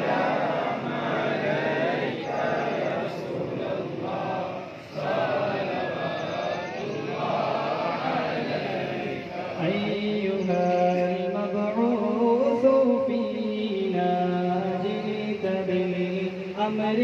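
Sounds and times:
men chanting together: 0:00.0 - 0:11.6.

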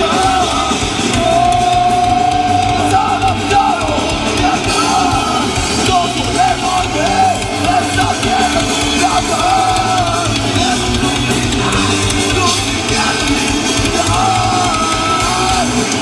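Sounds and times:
punk rock band playing: 0:00.0 - 0:16.0.

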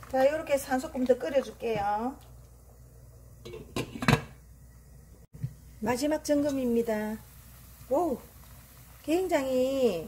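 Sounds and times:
metal pot knocks and clinks: 0:03.4 - 0:04.4.

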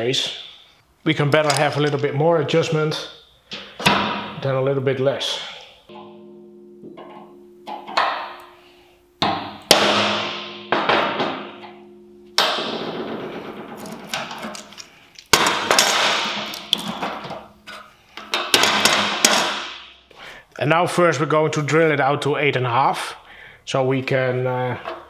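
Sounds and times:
hammer striking steel punch: 0:06.8 - 0:08.6, 0:09.2 - 0:13.6.

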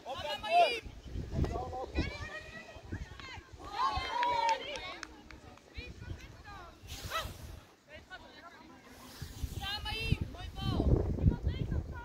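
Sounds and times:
voices shouting: 0:00.0 - 0:05.1.

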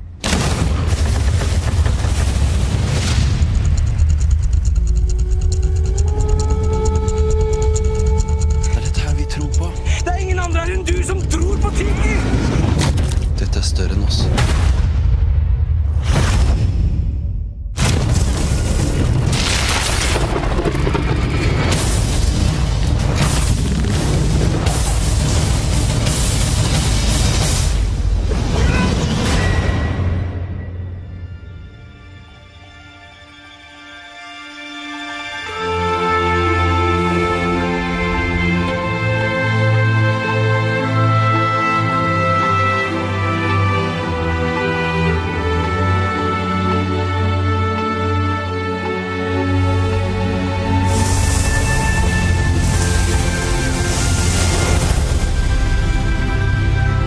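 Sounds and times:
trailer music: 0:00.0 - 0:57.0.

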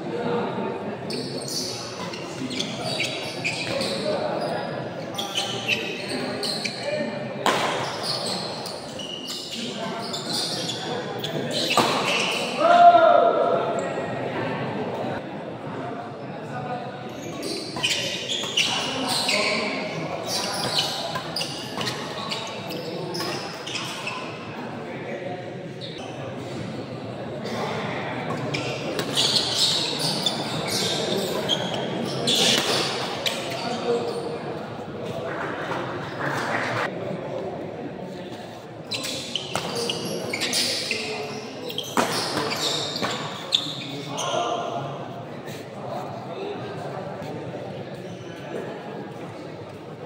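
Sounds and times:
hubbub of spectators' voices: 0:00.0 - 0:50.0.

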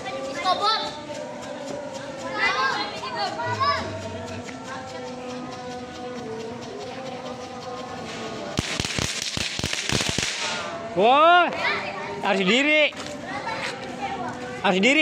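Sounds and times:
ground firework burning: 0:06.8 - 0:11.8
firework crackling and hissing: 0:07.8 - 0:10.8.

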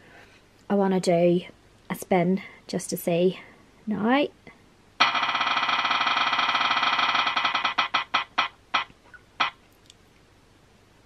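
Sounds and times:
spinning wheel ticking: 0:05.0 - 0:09.5.

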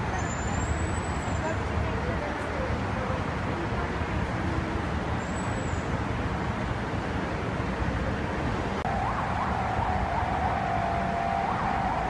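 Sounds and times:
passing cars rumbling: 0:00.0 - 0:12.0.

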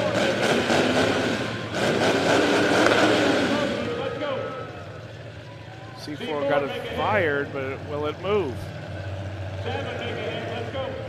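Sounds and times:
car engines droning: 0:00.0 - 0:11.0.

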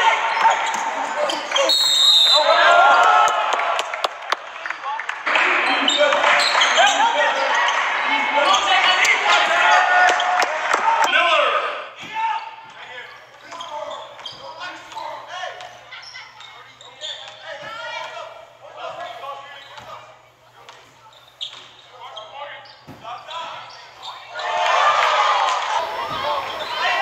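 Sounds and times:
spectators chattering: 0:00.0 - 0:02.7, 0:11.6 - 0:27.0
ball bouncing on hardwood court: 0:22.8 - 0:23.1.

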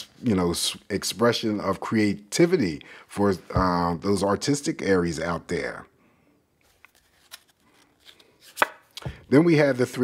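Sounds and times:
cards tapping and rustling: 0:06.8 - 0:09.3.

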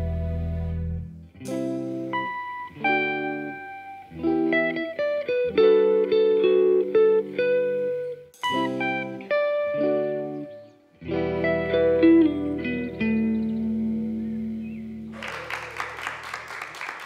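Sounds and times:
clean electric guitars: 0:00.0 - 0:15.9
applause: 0:15.1 - 0:17.0.

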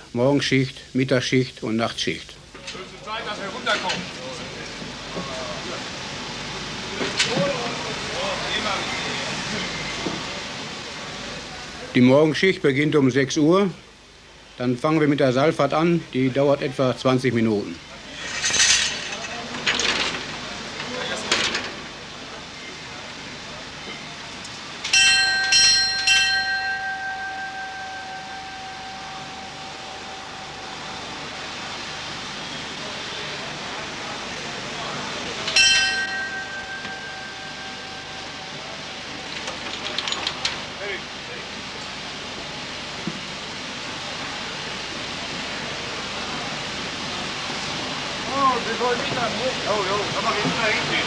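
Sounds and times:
steady background noise: 0:00.0 - 0:51.0
metal gates clattering: 0:18.1 - 0:21.8, 0:39.1 - 0:40.8
signal bell ringing: 0:24.9 - 0:32.7, 0:35.4 - 0:40.2.

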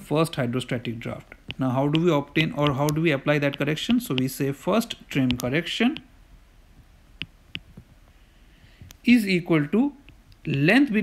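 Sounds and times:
stylus tapping on glass screen: 0:01.4 - 0:06.1, 0:07.2 - 0:07.9.

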